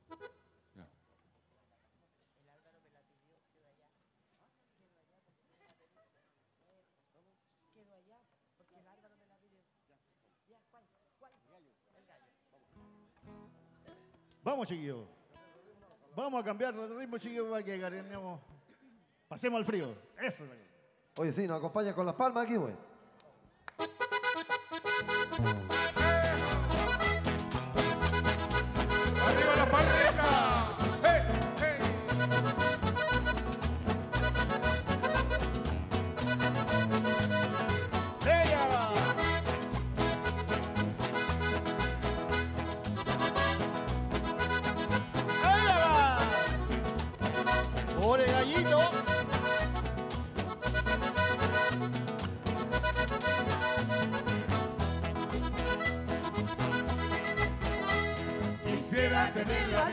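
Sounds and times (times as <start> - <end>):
accordion: 0.0 - 0.6, 23.7 - 59.9
acoustic guitar: 12.7 - 14.7, 23.8 - 59.9.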